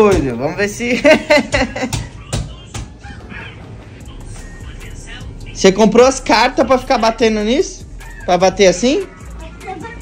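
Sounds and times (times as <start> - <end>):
man's voice: 0.0 - 9.1.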